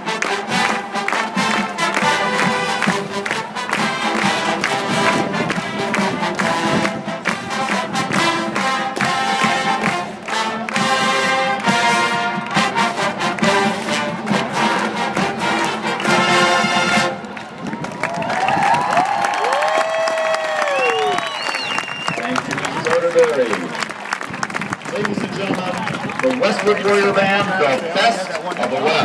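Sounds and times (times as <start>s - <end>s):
marching band playing: 0.0s - 18.9s, 21.2s - 29.0s
crowd cheering: 0.0s - 29.0s.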